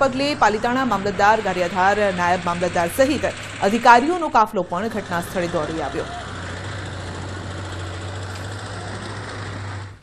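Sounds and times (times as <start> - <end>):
tractor engine running: 0.0 - 10.0.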